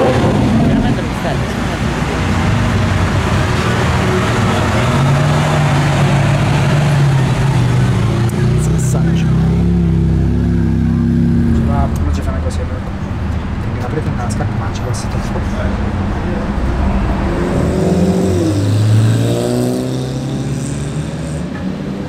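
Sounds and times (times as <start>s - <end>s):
car engine droning past: 0.0s - 22.0s.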